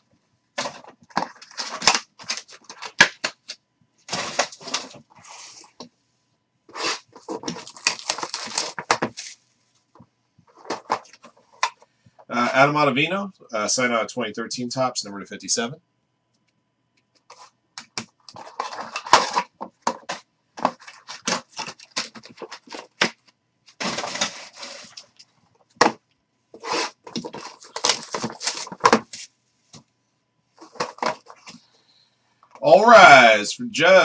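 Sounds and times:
cardboard box rustling and scraping: 0:06.7 - 0:09.4, 0:23.8 - 0:25.0, 0:26.6 - 0:29.3.

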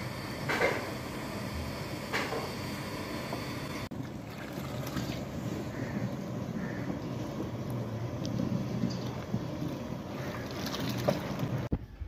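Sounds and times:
broth boiling hard: 0:00.0 - 0:11.7.

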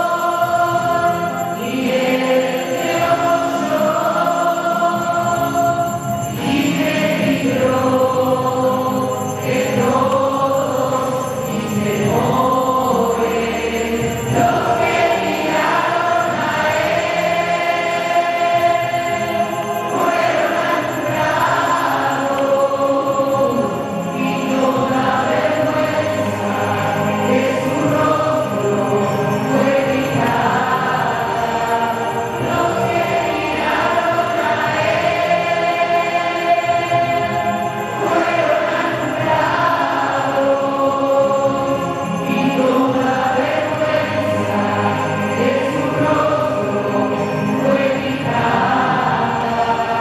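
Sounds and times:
choir singing a hymn: 0:00.0 - 0:50.0.

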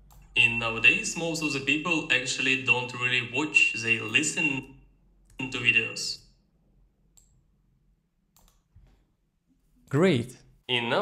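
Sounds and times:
man speaking: 0:00.3 - 0:04.7, 0:05.4 - 0:06.2, 0:09.9 - 0:11.0.

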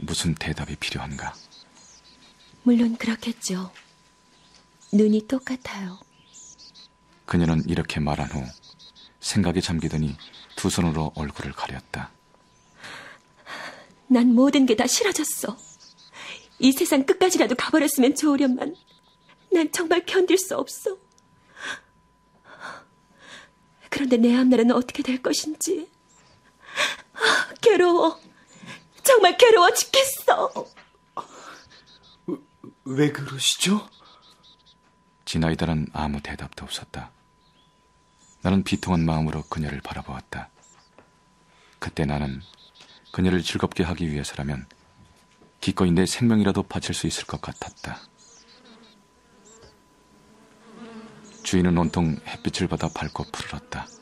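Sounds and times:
honeybees buzzing: 0:00.0 - 0:54.0
woman breathing heavily: 0:12.7 - 0:14.0, 0:16.1 - 0:16.5, 0:21.5 - 0:23.7, 0:26.5 - 0:27.6.

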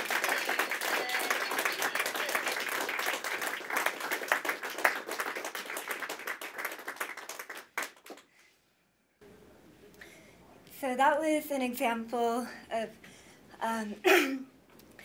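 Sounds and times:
people applauding: 0:00.0 - 0:08.3.

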